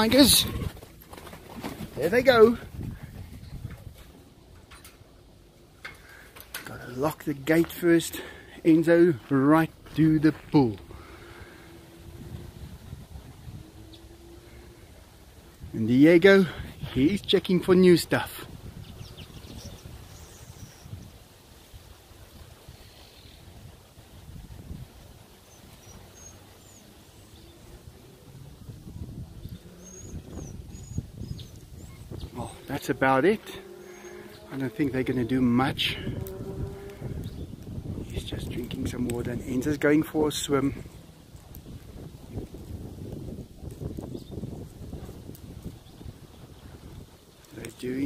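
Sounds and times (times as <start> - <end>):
faint bird chirps: 29.4 - 32.7, 33.8 - 34.5.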